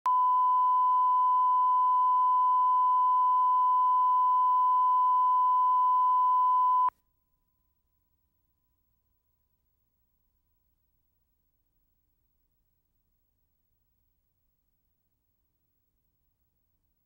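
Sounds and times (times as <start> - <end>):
steady pure test tone: 0.1 - 6.9.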